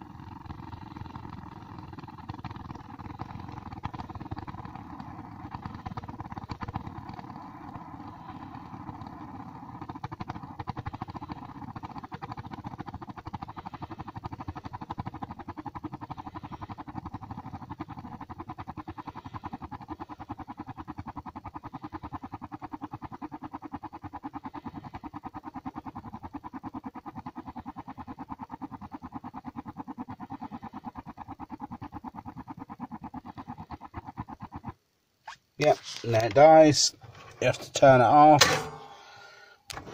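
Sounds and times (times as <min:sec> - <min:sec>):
gas heater burner spluttering: 0:00.0 - 0:34.7.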